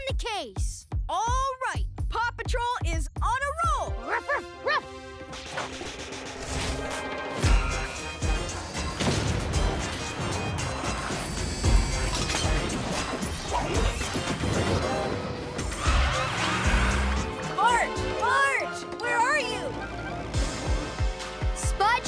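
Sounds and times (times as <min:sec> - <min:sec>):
upbeat theme music: 0:00.0 - 0:22.0
cartoon clanks and crashes: 0:08.7 - 0:16.3.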